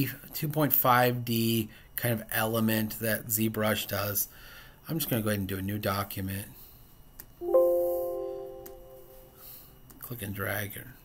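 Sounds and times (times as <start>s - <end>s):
computer alert chime: 7.4s - 9.4s.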